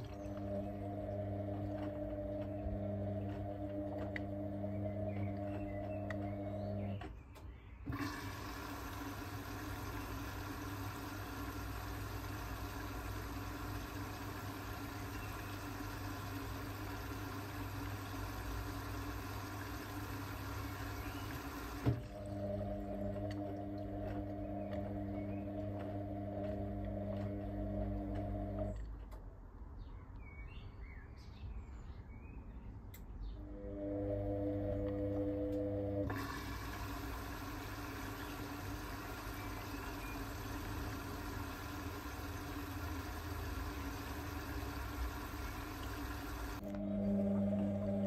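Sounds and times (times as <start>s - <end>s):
washing machine motor whine: 0.0s - 7.1s, 7.8s - 28.9s, 33.4s - 48.0s
water filling drum hiss: 7.9s - 28.6s, 35.6s - 46.7s.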